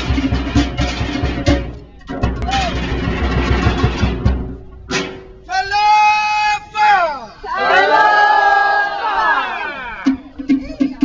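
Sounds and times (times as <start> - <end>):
fast low drumming: 0.0 - 5.1.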